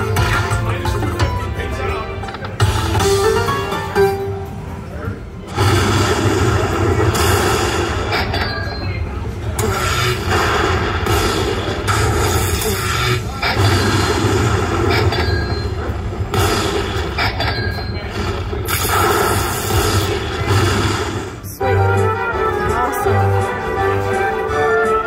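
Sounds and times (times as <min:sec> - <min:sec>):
slot machine bonus music: 0:00.0 - 0:04.7, 0:21.6 - 0:25.0.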